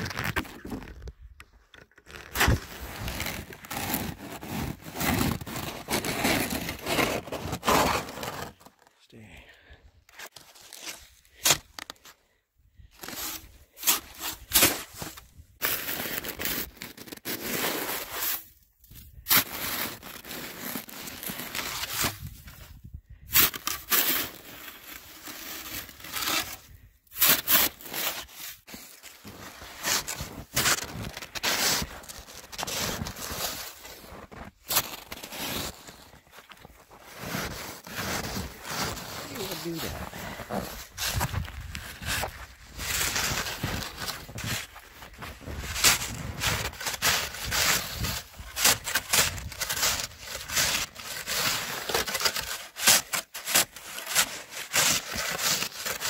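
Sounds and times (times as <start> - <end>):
snow shovel scraping through snow: 2.3 - 8.6, 13.0 - 18.6, 19.3 - 22.6, 23.3 - 56.0.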